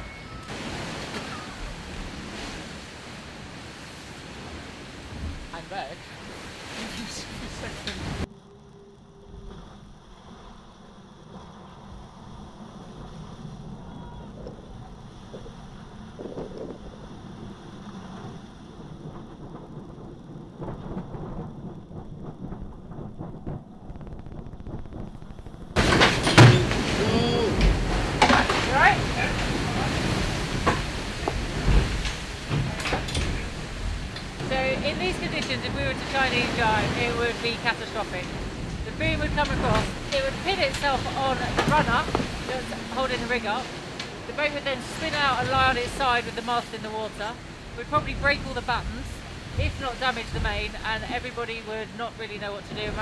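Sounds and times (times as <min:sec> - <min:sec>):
water washing over boat deck: 0:00.0 - 0:53.0
wind: 0:00.0 - 0:53.0.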